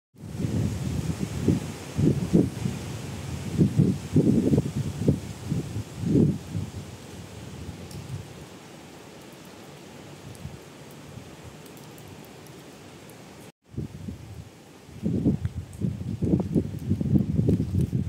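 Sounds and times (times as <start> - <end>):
wind buffeting microphone: 0.2 - 8.5, 10.2 - 10.6, 13.7 - 18.0
faint outdoor hiss: 0.2 - 18.0.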